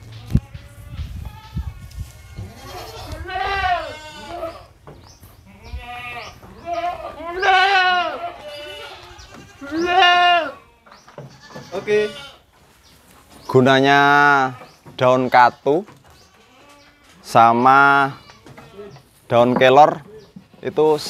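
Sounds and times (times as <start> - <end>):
goats bleating: 0.2 - 4.8, 5.4 - 12.5, 13.8 - 19.1.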